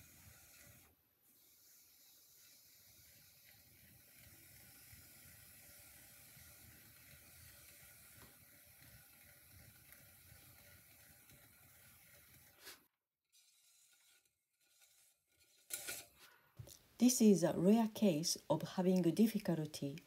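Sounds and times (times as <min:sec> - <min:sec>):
loop tool trimming clay hiss: 0:00.0 - 0:12.8.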